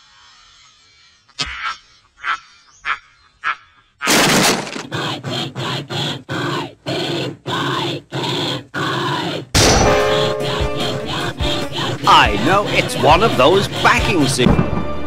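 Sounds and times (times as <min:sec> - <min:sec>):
cartoon steam locomotive chugging: 0:04.7 - 0:15.0.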